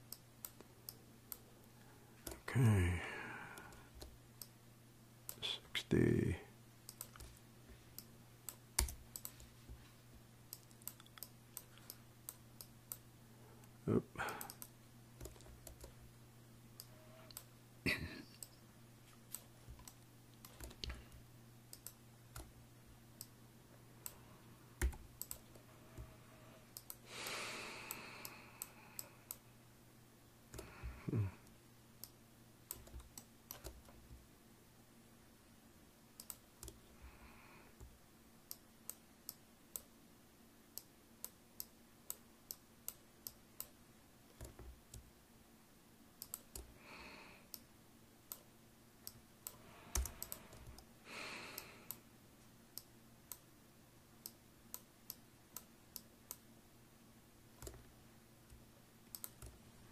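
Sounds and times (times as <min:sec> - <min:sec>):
steady low hum: 0:00.0 - 0:59.9
keyboard and mouse clicking: 0:06.8 - 0:07.4, 0:08.0 - 0:09.5, 0:10.5 - 0:13.0, 0:13.6 - 0:16.0, 0:19.3 - 0:22.6, 0:24.8 - 0:27.0, 0:32.0 - 0:34.0, 0:36.2 - 0:36.9, 0:40.8 - 0:45.1, 0:46.2 - 0:46.7, 0:48.3 - 0:50.9, 0:57.6 - 0:57.9, 0:58.5 - 0:59.9.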